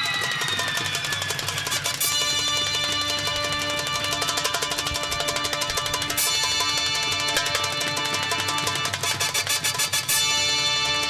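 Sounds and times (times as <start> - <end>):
band playing lively music: 0.0 - 11.0
hand drum strokes: 1.7 - 10.2.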